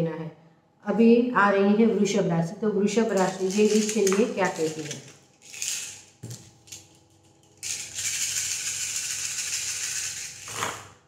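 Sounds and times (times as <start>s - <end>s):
shells rattling in hands: 3.1s - 10.6s.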